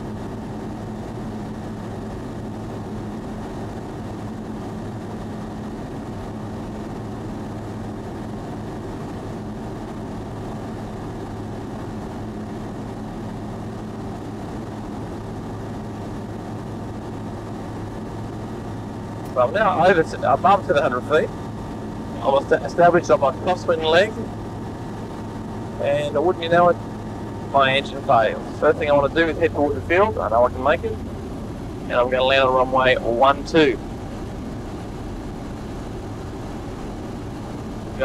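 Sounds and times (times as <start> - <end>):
light aircraft engine droning: 0.0 - 38.0.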